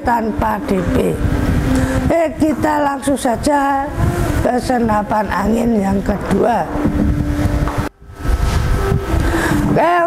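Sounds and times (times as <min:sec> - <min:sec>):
microphone rustle: 0:00.6 - 0:10.0.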